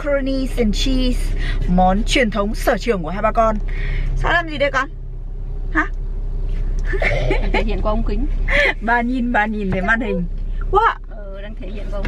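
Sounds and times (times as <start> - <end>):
car cabin drone: 0.0 - 12.0.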